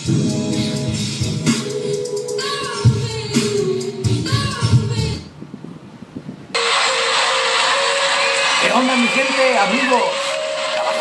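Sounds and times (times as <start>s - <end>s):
intro music: 0.0s - 5.2s, 6.6s - 11.0s.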